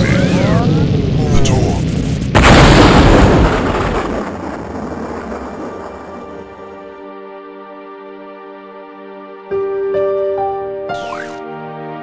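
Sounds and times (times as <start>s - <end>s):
explosion blast: 0.2s - 6.7s.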